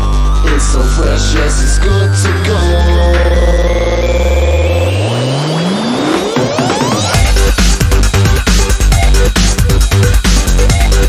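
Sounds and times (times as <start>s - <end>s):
held synth chord: 0.0s - 7.5s
rising synth sweep: 0.0s - 8.3s
deep bass: 0.0s - 11.0s.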